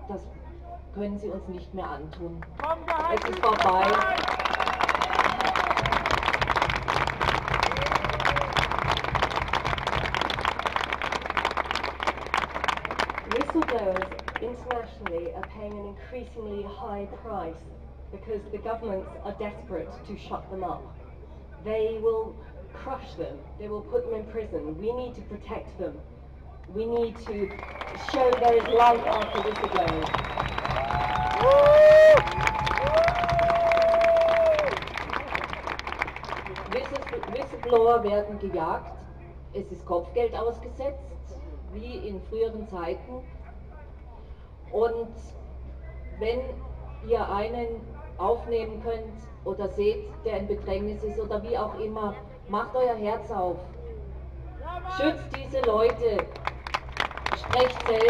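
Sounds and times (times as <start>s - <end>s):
voices: 0.0s - 4.4s, 13.3s - 32.3s, 33.4s - 56.4s, 57.3s - 58.0s
crowd applauding: 2.5s - 14.4s, 27.4s - 37.8s, 56.2s - 58.0s.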